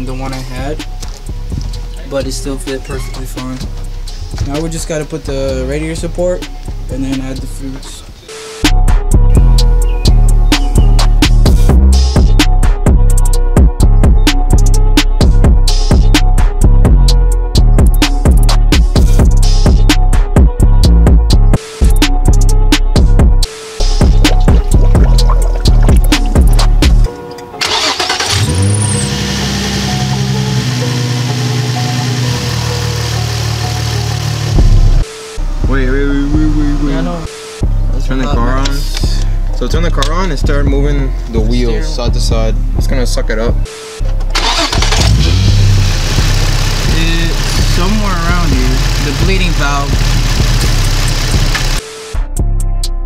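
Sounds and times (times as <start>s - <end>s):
music with drum beats: 0.0s - 27.4s, 34.5s - 44.4s, 45.1s - 52.9s
car engine starting and idling: 23.8s - 36.9s, 44.2s - 52.2s.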